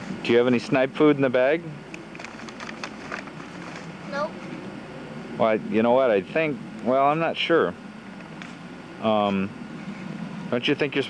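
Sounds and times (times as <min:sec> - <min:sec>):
steady background hiss: 0:00.0 - 0:11.0
paper bag crinkling: 0:02.2 - 0:03.9
child saying nope: 0:04.1 - 0:04.4.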